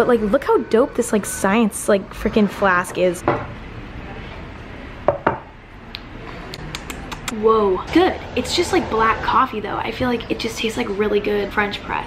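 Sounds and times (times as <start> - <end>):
lips smacking: 5.9 - 7.4.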